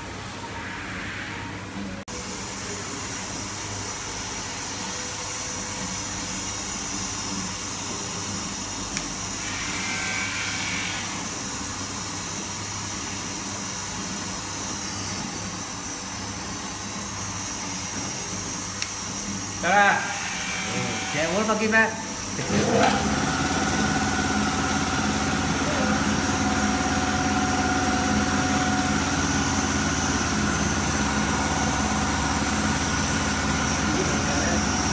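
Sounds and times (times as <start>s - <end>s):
machine humming and hissing: 0.0s - 34.9s.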